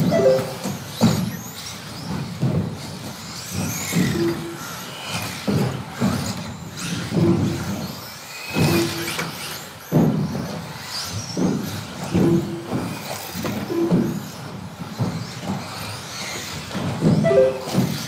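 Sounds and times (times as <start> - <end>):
toy cars thudding on track: 0.6 - 18.0.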